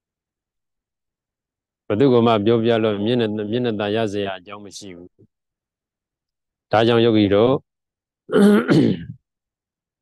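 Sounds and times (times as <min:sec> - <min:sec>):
man clearing his throat: 0:08.3 - 0:09.2.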